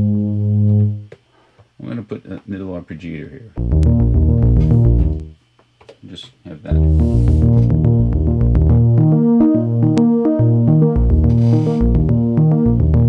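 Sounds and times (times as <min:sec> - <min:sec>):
synthesizer fast arpeggio: 0:03.6 - 0:05.3, 0:06.8 - 0:13.0.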